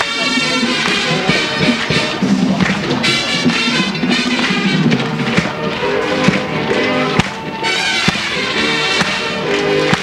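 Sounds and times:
sustained brass chords: 0:00.0 - 0:10.0
sharp drum hits: 0:00.5 - 0:06.5.

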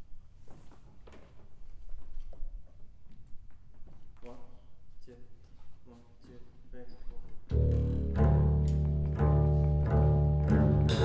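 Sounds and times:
bowed double bass note: 0:07.5 - 0:11.0.

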